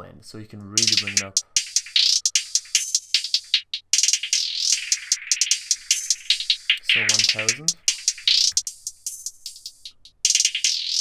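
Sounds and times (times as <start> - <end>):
rapid hi-hat ticks: 0.8 - 11.0.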